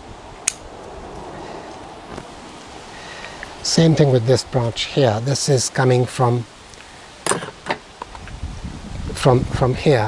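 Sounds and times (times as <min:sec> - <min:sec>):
wind rumble on microphone: 0:00.0 - 0:03.7, 0:08.0 - 0:10.0
light rustling of foliage: 0:00.0 - 0:10.0.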